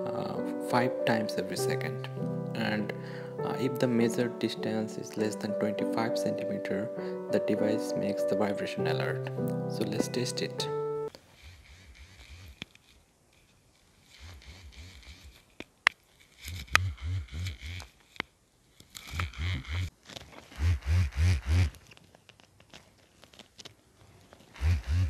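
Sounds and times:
vibration motor buzzing in pulses: 0:14.0 - 0:15.4, 0:16.3 - 0:18.0, 0:19.0 - 0:19.9, 0:20.6 - 0:21.8, 0:24.6 - 0:25.0.

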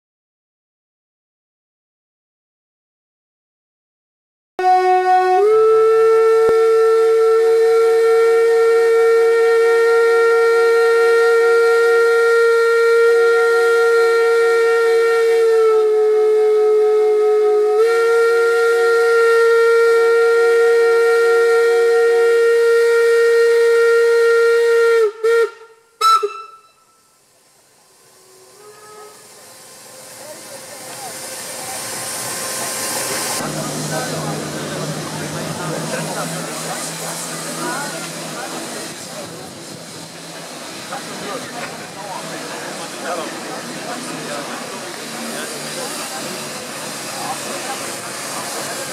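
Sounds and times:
steam locomotive whistle: 0:04.6 - 0:27.2, 0:28.1 - 0:48.9
steam hiss: 0:26.0 - 0:48.9.

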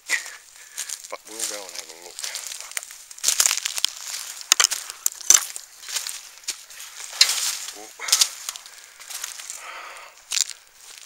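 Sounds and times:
footsteps crunching through dry leaves: 0:00.0 - 0:11.0
twig snapping: 0:02.2 - 0:09.5, 0:10.3 - 0:11.0.

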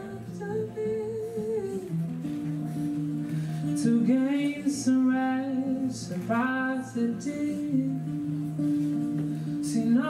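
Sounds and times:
acoustic guitar: 0:00.0 - 0:10.0
man singing: 0:03.7 - 0:08.5, 0:09.5 - 0:10.0.

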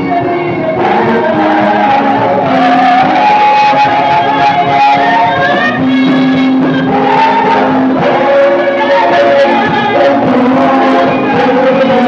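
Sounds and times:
gospel band playing: 0:00.0 - 0:12.0.

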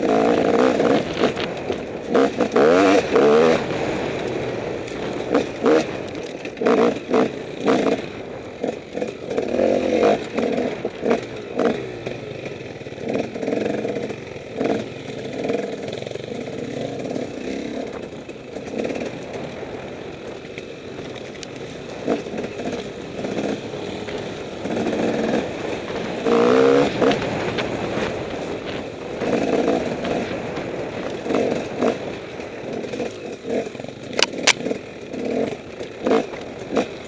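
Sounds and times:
bike knocking and rattling: 0:00.0 - 0:37.0
motorcycle engine revving: 0:00.0 - 0:37.0.

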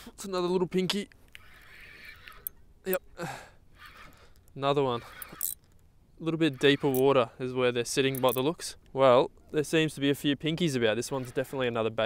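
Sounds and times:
breathy sound: 0:03.2 - 0:04.5.

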